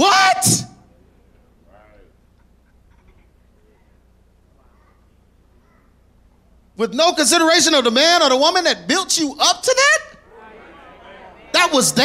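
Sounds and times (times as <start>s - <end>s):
steady low hum: 0.0s - 12.0s
faint audience voices: 10.2s - 12.0s.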